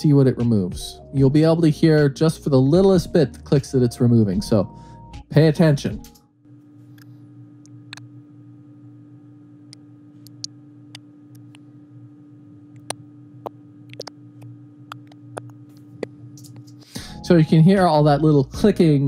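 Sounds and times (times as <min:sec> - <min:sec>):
faint steady hum: 0:00.0 - 0:19.0
mouth clicks: 0:12.8 - 0:16.8.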